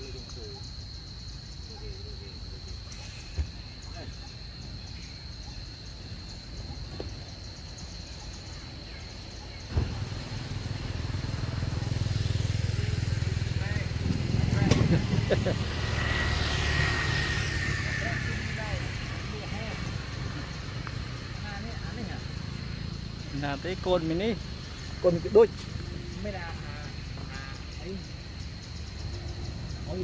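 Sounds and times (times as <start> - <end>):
engine running: 9.7 - 21.2.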